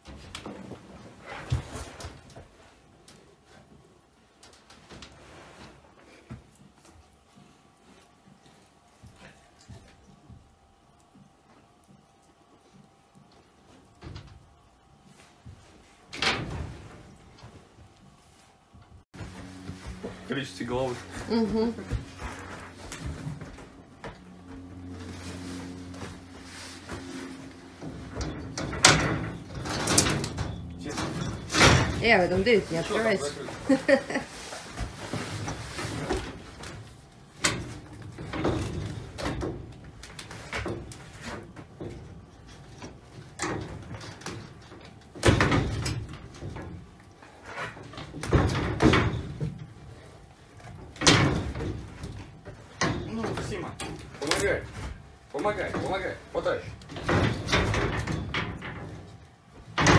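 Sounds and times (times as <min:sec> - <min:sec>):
low steady hum: 0:00.1 - 0:59.9
wire-mesh cage rattling and banging: 0:22.0 - 0:34.1, 0:34.9 - 0:59.9.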